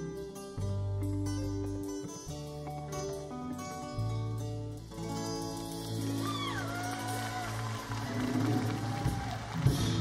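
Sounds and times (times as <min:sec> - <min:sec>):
audience applause: 0:06.3 - 0:10.0.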